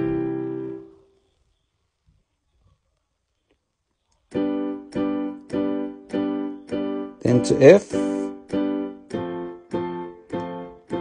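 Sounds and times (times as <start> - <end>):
electronic piano chord strikes: 0.0 - 1.0, 4.3 - 11.0.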